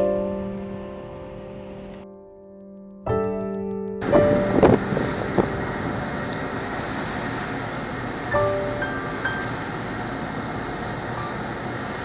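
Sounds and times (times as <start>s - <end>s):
ferry engine drone: 4.0s - 12.0s
water rushing: 4.0s - 12.0s
wind: 4.0s - 12.0s.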